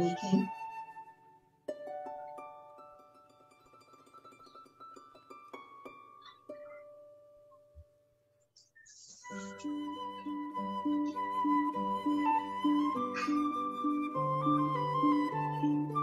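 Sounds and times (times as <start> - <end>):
plucked harp-like string music: 0.0 - 1.1, 1.7 - 7.7, 9.3 - 16.0.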